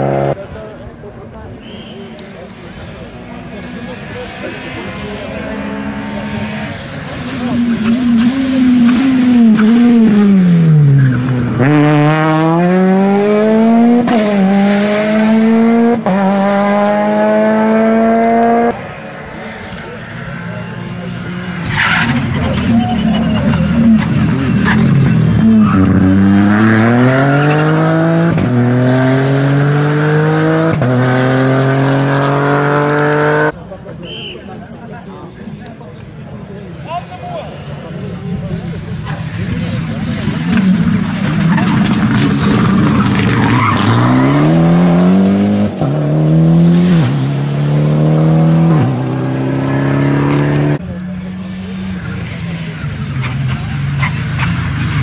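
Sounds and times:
rally cars passing: 0.0 - 55.0.

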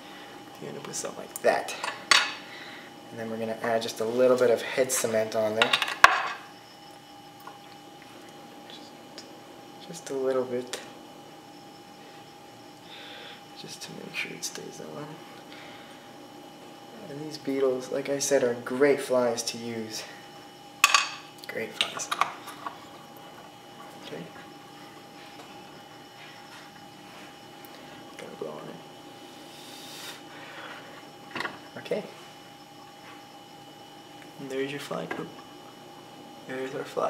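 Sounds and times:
faint steady hum: 0.0 - 37.0.

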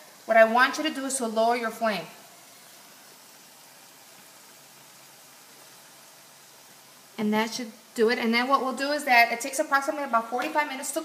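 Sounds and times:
gas stove burner hissing: 0.0 - 11.0.

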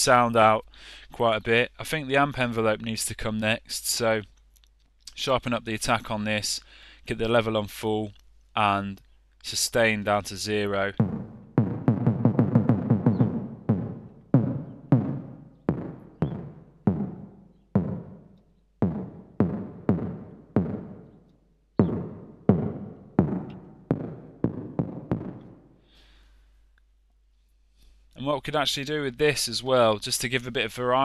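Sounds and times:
synthesized kick drum hits with reverb: 11.0 - 21.1, 21.8 - 25.6.

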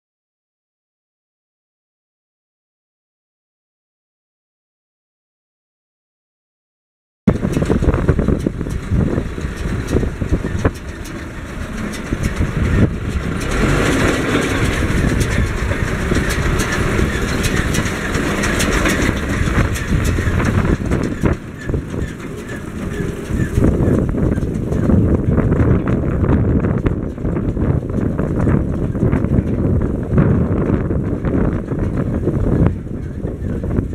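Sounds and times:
wind gusting on microphone: 7.3 - 33.9.

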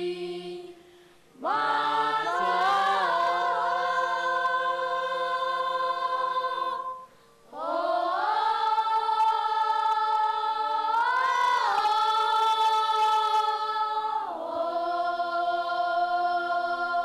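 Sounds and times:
children singing unaccompanied: 0.0 - 0.8, 1.4 - 17.0.

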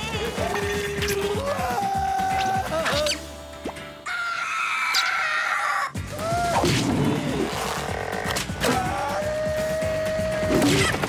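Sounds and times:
cartoon wolf screaming: 4.1 - 6.7, 7.8 - 11.0.

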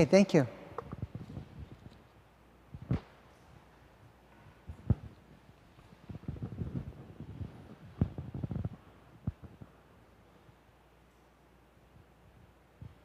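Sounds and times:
muffled thumps and rumbling: 4.7 - 5.2, 5.8 - 9.7.

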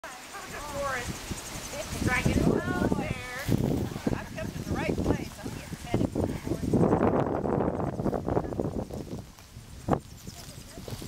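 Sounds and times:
people talking: 0.0 - 8.9, 10.2 - 11.0.

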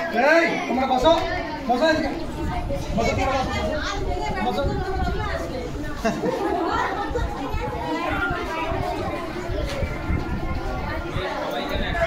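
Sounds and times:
chatter of adults and children: 0.0 - 12.0.

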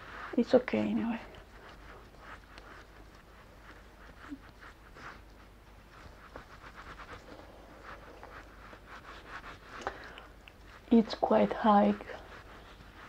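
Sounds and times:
fingertips tapping and rubbing skin: 0.2 - 13.0.

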